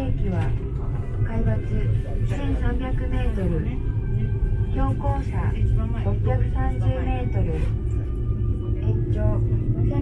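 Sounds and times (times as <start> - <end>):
gondola cabin rumble: 0.0 - 10.0.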